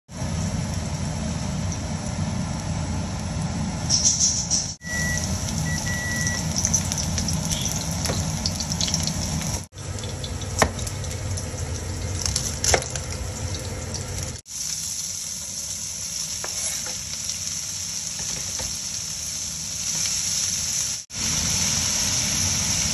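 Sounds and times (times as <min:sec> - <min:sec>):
garlic sizzling in oil: 0:04.8 - 0:22.9.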